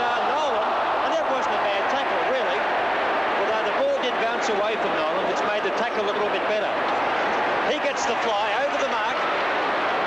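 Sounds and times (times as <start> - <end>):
man talking: 0.0 - 2.6, 3.4 - 6.8, 7.7 - 9.2
crowd noise: 0.0 - 10.0.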